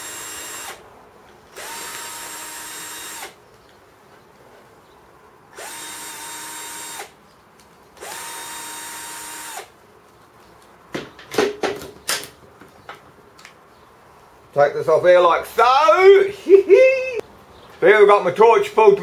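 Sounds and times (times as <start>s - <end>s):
cordless drill motor whine: 0.0s - 0.8s, 1.5s - 3.4s, 5.6s - 7.2s, 8.0s - 9.7s.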